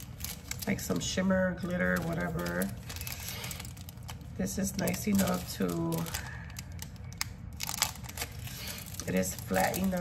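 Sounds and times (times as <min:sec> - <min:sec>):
packaging crinkling: 0:00.0 - 0:10.0.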